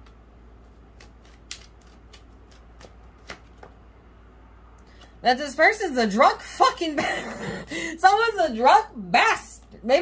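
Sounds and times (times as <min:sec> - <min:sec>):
cards clicking and slapping: 0:00.0 - 0:03.8.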